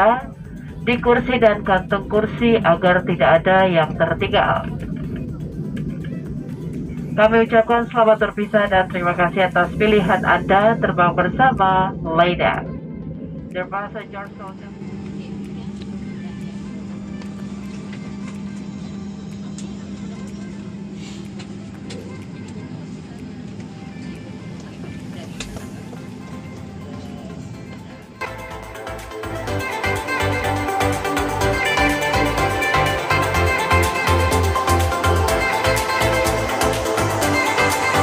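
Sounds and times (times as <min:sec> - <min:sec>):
passengers murmuring: 0:00.0 - 0:28.3
airplane cabin rumble: 0:00.0 - 0:38.0
faint music: 0:00.0 - 0:38.0.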